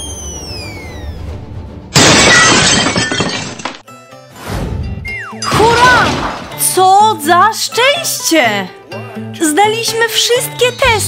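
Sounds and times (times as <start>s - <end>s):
glass shattering: 2.0s - 3.9s.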